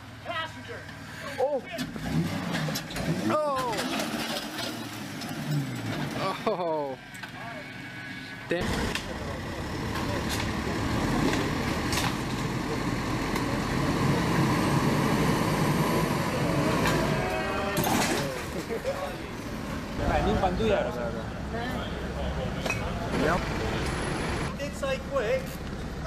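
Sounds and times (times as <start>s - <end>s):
vehicle engine running rough: 0.9s - 26.0s
voices: 2.6s - 4.7s, 6.0s - 26.0s.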